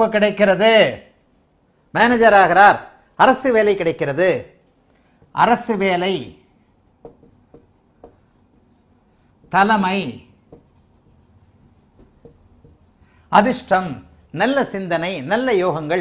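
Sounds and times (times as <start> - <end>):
marker scratching on whiteboard: 5.2 - 13.7.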